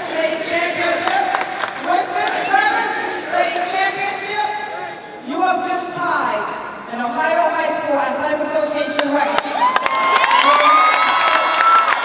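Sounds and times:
group cheering and clapping: 0:00.0 - 0:02.8, 0:09.4 - 0:12.0
long held whoops: 0:09.5 - 0:12.0.

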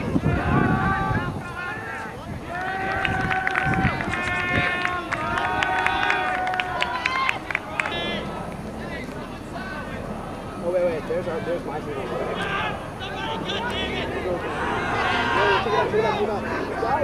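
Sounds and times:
people shouting long yells: 0:00.0 - 0:10.6, 0:12.0 - 0:17.0.

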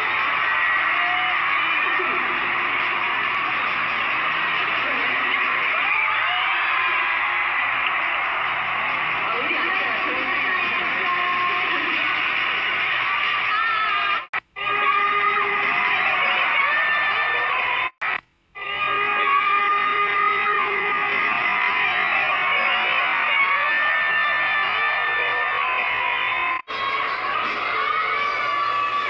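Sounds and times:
music: 0:00.0 - 0:18.0, 0:18.6 - 0:29.0
crowd screaming and cheering: 0:00.0 - 0:29.0.

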